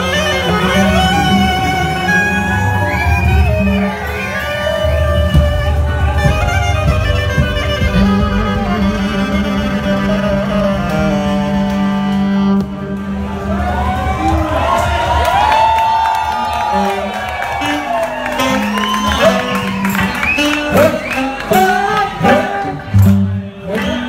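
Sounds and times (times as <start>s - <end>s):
violin: 0.0s - 14.8s
drums: 0.0s - 24.0s
guitar: 0.0s - 24.0s
saxophone: 0.0s - 24.0s
wooden flute: 0.0s - 24.0s.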